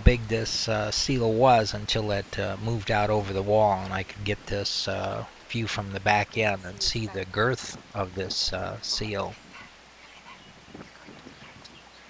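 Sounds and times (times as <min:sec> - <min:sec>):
faint surf: 0:00.0 - 0:12.0.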